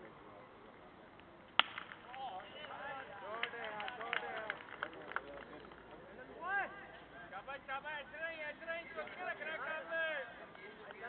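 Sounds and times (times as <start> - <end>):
cricket bat hitting ball: 1.6 - 2.4.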